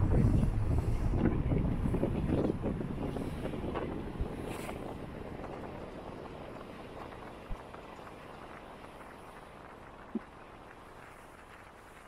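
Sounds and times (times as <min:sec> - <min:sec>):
road and engine rumble: 0:00.0 - 0:12.0
wind buffeting microphone: 0:00.0 - 0:12.0.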